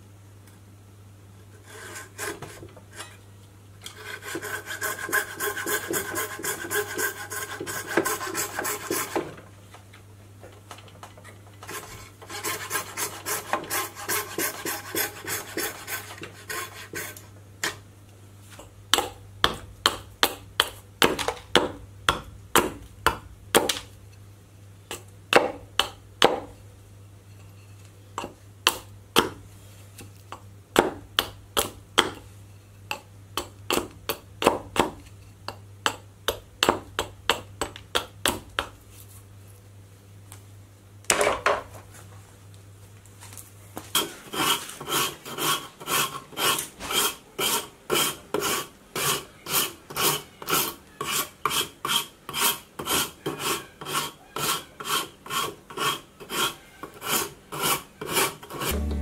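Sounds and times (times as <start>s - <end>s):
file shaping wood: 1.5s - 3.2s, 3.9s - 9.3s, 11.7s - 17.8s, 43.9s - 59.0s
frame saw cutting wood: 58.5s - 59.0s.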